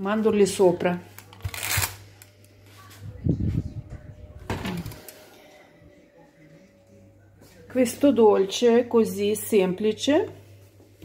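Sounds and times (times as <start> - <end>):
steady low hum: 1.0 - 11.0.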